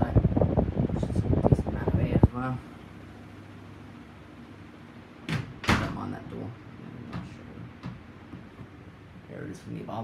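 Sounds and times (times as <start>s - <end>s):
ceiling fan hum: 0.0s - 10.0s
door banging: 5.3s - 6.0s.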